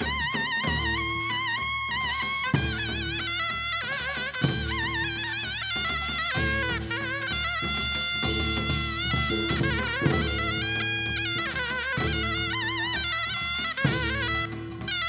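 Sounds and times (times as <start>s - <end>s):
double-reed shawm melody: 0.0s - 15.0s
drums and gong: 0.0s - 15.0s.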